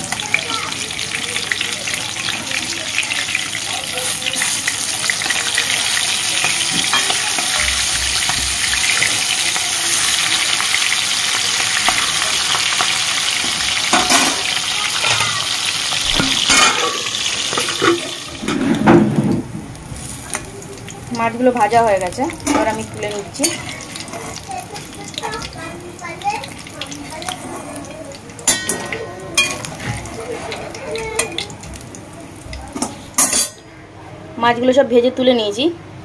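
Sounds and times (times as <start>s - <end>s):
fish sizzling in hot oil: 0.0s - 33.6s
metal spatula scraping pan: 27.0s - 28.8s.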